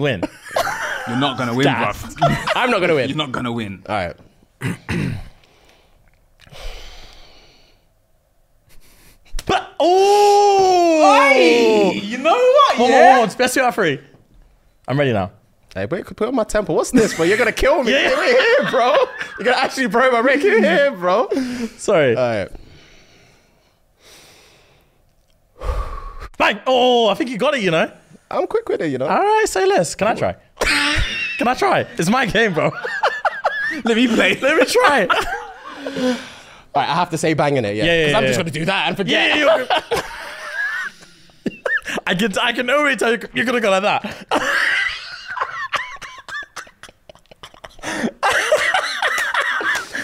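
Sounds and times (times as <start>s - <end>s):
men laughing hard: 0.2s - 3.2s, 17.0s - 21.3s, 30.6s - 36.4s, 38.2s - 42.1s, 44.0s - 50.0s
man breathing out through nose: 5.6s - 7.9s, 25.6s - 26.3s.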